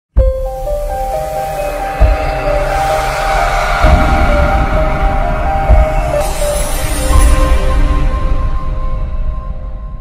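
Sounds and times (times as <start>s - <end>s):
whoosh: 1.0s - 8.4s
deep boom: 1.9s - 7.9s.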